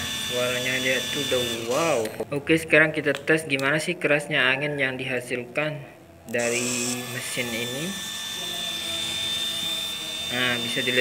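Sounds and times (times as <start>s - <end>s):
small motor high whine: 0.0s - 2.2s, 6.4s - 11.0s.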